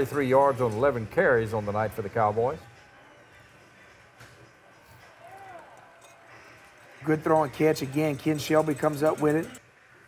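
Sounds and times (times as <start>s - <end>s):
faint stadium crowd noise: 0.0s - 10.0s.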